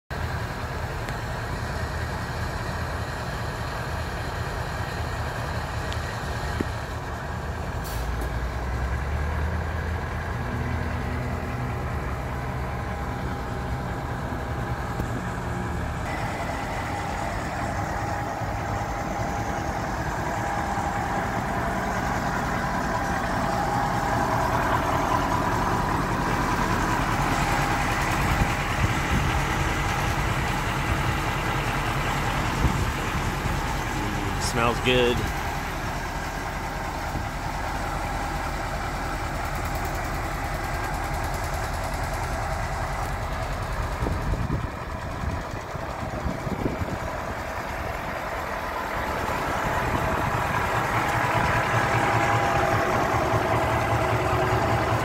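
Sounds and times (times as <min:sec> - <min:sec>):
diesel truck engine idling: 0:00.1 - 0:55.0
higher steady tone: 0:16.1 - 0:26.8.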